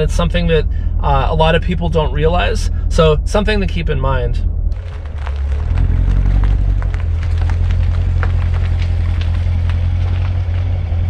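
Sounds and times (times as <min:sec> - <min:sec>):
car engine low exhaust rumble: 0:00.0 - 0:11.0.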